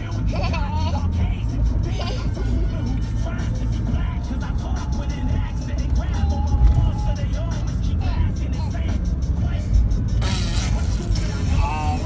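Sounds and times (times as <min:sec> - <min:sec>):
car road rumble from inside: 0:00.0 - 0:12.0
music playing: 0:00.0 - 0:12.0.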